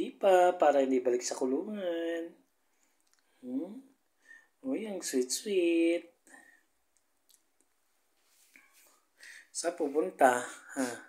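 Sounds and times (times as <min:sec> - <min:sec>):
faint soft clicks: 0:02.8 - 0:03.3, 0:06.2 - 0:07.9.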